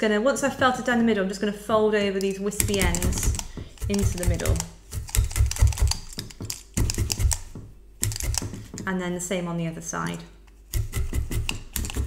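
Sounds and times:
felting needle tapping into wool: 2.6s - 8.9s.

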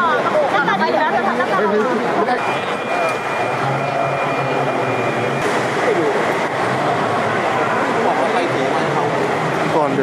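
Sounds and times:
babble of voices: 0.0s - 10.0s
thin steady high tone: 2.2s - 8.6s.

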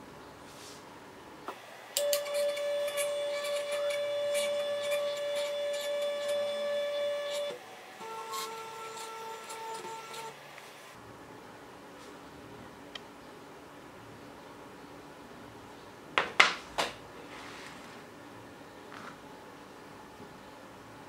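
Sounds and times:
stepper motors whining: 2.0s - 10.4s.

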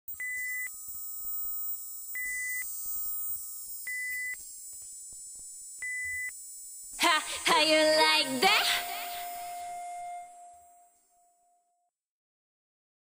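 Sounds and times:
high electronic beeps: 3.8s - 4.4s, 5.8s - 6.4s, 8.0s - 10.8s
low tone: 8.6s - 11.7s.

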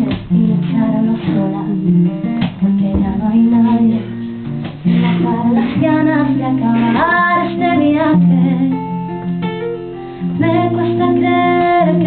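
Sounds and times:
woman singing: 0.0s - 9.5s, 10.2s - 12.0s
strummed acoustic guitar: 0.0s - 12.0s.

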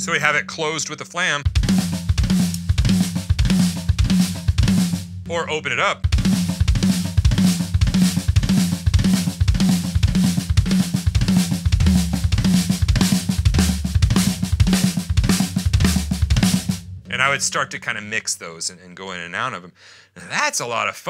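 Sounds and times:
acoustic drum kit playing: 1.4s - 18.1s.

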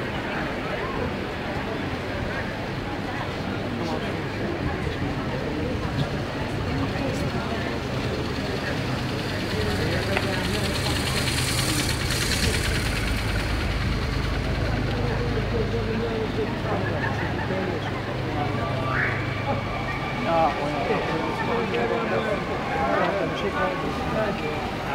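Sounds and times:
vehicle engines humming: 0.0s - 24.9s
hiss of passing vehicle: 9.4s - 15.4s.

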